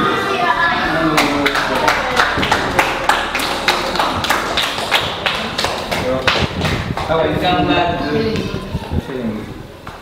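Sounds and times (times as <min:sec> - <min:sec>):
group clapping in rhythm: 0:01.1 - 0:07.4.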